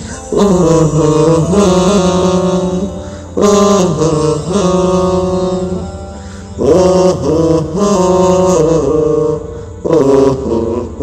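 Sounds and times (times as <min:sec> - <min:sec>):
layered voices chanting: 0:00.0 - 0:11.0.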